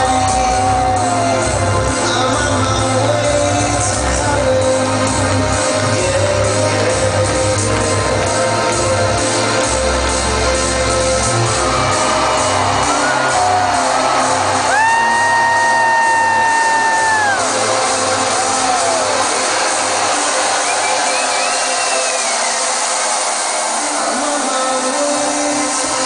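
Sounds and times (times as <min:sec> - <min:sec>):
crowd cheering and whooping: 0:00.0 - 0:02.4, 0:10.8 - 0:26.0
trance music with deep bass: 0:00.0 - 0:26.0.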